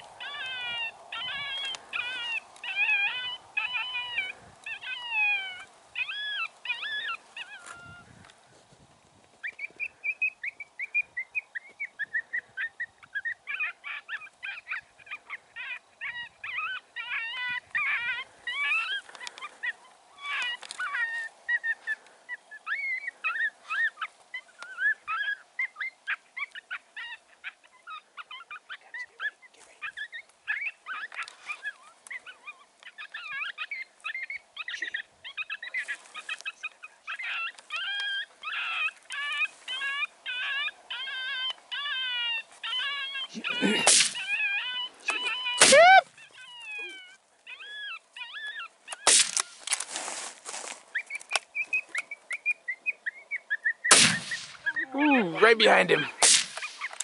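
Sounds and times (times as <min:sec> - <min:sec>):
high yelping distress calls: 0:00.0 - 0:08.0, 0:12.0 - 0:49.6, 0:51.0 - 0:57.0.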